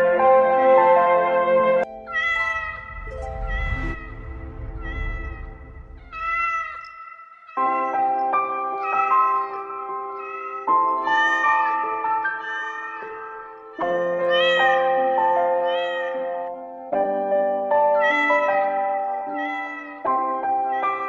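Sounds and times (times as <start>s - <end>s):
sustained musical backing: 1.7s - 7.0s.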